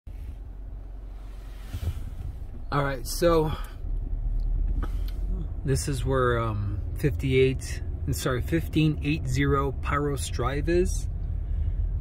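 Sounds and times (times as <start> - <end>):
car driving rumble: 0.1 - 12.0.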